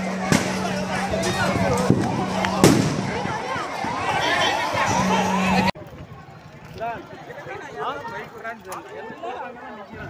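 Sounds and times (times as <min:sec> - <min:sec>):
people's voices: 0:00.0 - 0:10.0
firecracker bangs: 0:00.3 - 0:00.8, 0:02.6 - 0:03.2.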